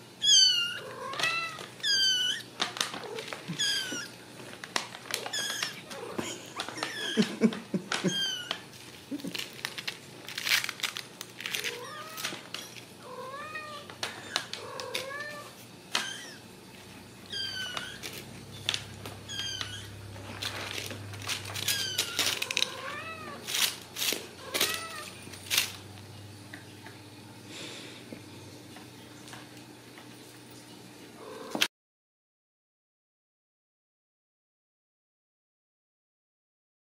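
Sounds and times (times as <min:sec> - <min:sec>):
kittens mewing: 0:00.2 - 0:04.2, 0:05.1 - 0:09.6, 0:11.4 - 0:16.5, 0:17.1 - 0:25.8
clicks and rustles of play: 0:17.6 - 0:22.8.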